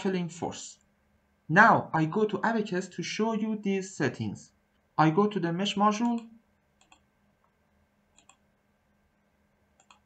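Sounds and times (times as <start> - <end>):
computer mouse clicking: 6.0 - 7.1, 8.1 - 8.4, 9.8 - 10.0.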